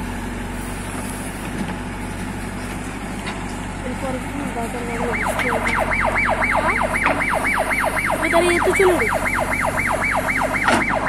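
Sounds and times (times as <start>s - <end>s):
electronic siren yelping: 5.0s - 11.0s.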